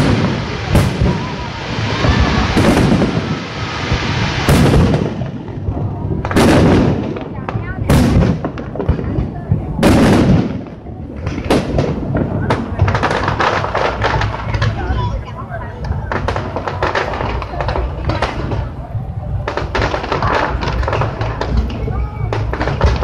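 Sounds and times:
fireworks booming with echo: 0.0s - 23.0s.

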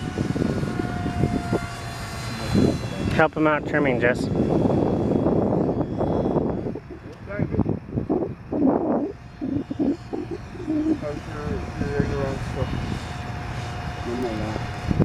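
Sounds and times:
model airplane motor droning: 0.0s - 15.0s
muffled voices: 9.4s - 12.8s.

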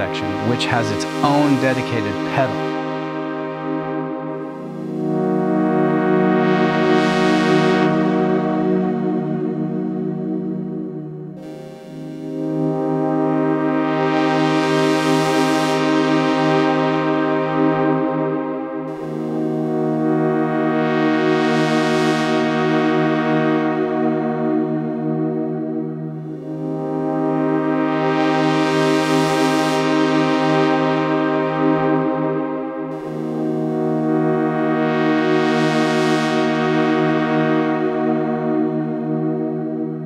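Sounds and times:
synth brass chords: 0.0s - 40.0s.

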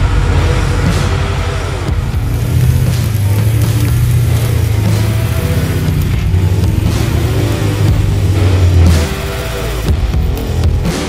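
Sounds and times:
music: 0.0s - 11.0s
truck engine driving: 0.0s - 11.0s.

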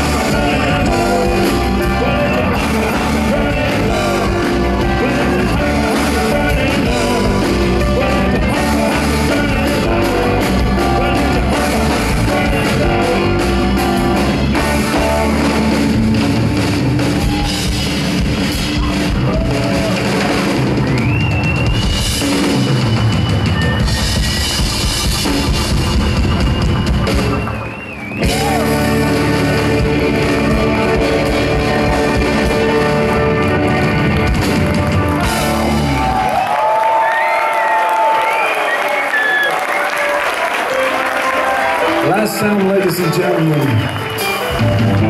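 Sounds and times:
audience cheering and applauding: 0.0s - 45.0s
rock band playing loudly: 0.0s - 45.0s.

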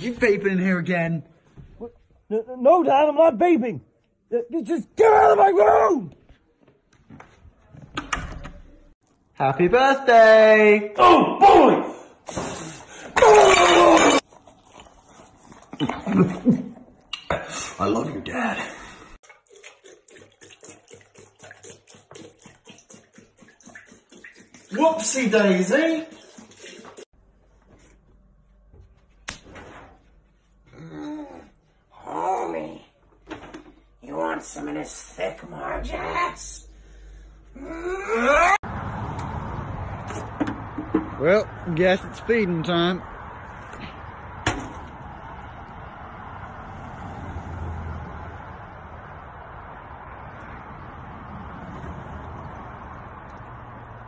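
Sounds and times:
outdoor background noise: 0.0s - 54.0s
soda glugging from bottle: 19.3s - 24.8s.

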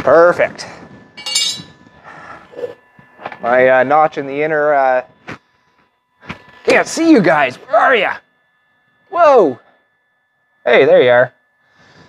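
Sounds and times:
metallic clink: 1.2s - 1.8s.

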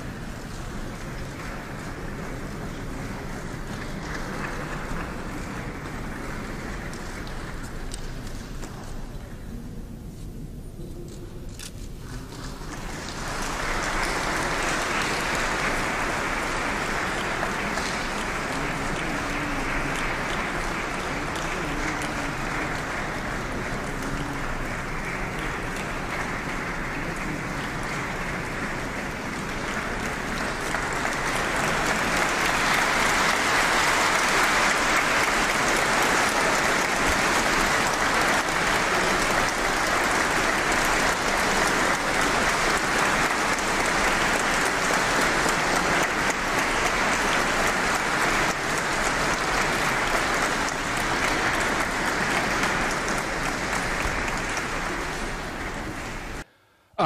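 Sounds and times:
audience applauding: 0.0s - 9.2s, 11.6s - 56.5s.

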